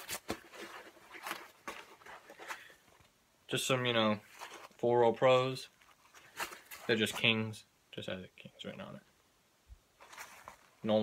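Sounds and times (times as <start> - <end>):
handling noise rustling: 0.0 - 7.5, 10.0 - 11.0.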